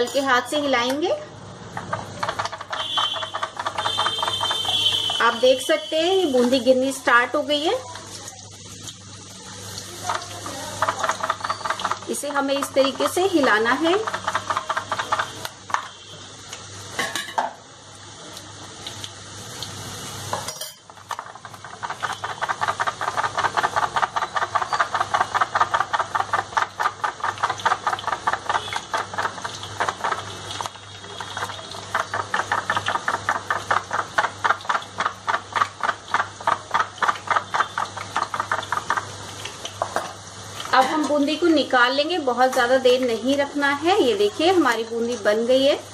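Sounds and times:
batter sizzling in hot oil: 0:00.0 - 0:45.9
foil container rattling: 0:01.9 - 0:05.2, 0:10.4 - 0:15.4, 0:21.1 - 0:30.6.

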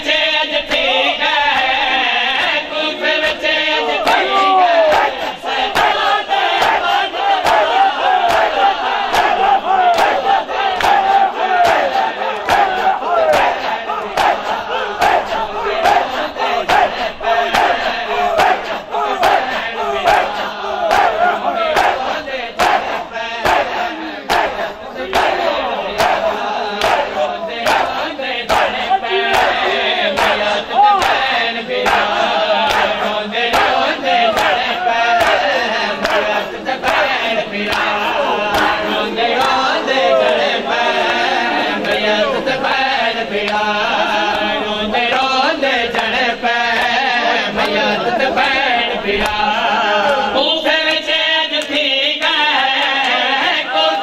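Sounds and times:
crowd of men shouting: 0:00.6 - 0:51.1, 0:52.5 - 0:54.0
hands slapping chests: 0:04.9 - 0:16.9, 0:22.6 - 0:23.7, 0:24.3 - 0:29.6, 0:30.2 - 0:38.8.

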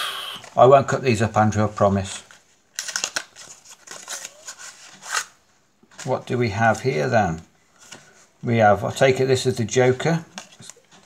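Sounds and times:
playing cards rustling and scraping: 0:01.6 - 0:08.4.

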